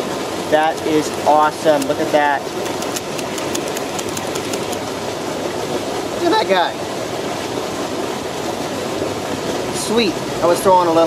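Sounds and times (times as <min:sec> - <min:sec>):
creek water rushing: 0:00.0 - 0:11.0
small sharp clicks: 0:02.6 - 0:04.8.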